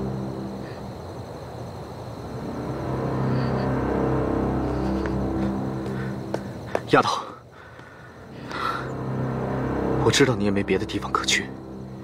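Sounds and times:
dark drama underscore: 0.0s - 12.0s
held low notes: 2.2s - 7.3s.

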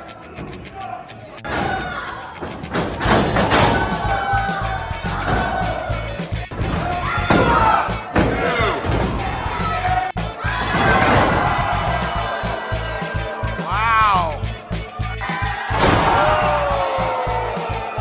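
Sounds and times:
crowd shouting and cheering: 0.0s - 18.0s
music: 0.0s - 18.0s.

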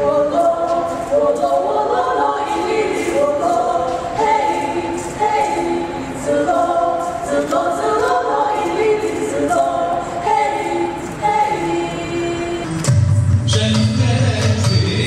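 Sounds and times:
women singing in chorus: 0.0s - 12.7s.

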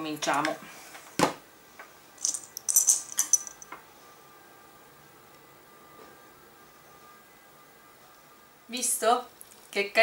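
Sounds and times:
dry pasta clicking and rattling: 2.2s - 3.7s.

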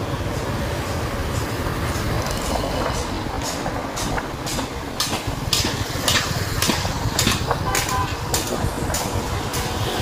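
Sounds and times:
road and traffic noise: 0.0s - 10.0s.

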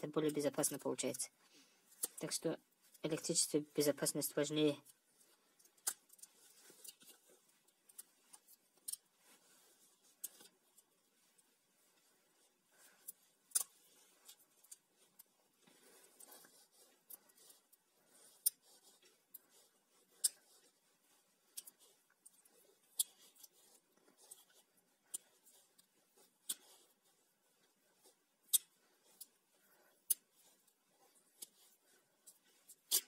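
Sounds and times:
electrical tape crackling rustle: 0.0s - 33.0s.

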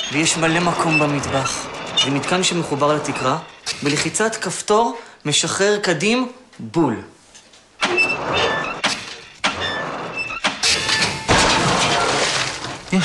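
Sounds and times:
water jugs crashing and clattering: 7.8s - 13.0s.

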